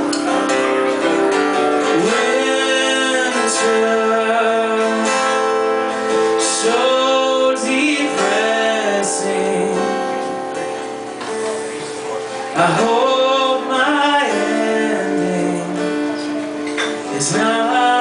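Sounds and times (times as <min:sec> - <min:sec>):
strummed acoustic guitar: 0:00.0 - 0:18.0
man singing: 0:01.6 - 0:10.4, 0:12.3 - 0:18.0.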